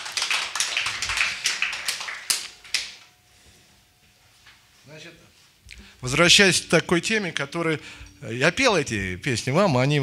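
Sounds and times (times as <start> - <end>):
audience applause: 0.0 - 3.0.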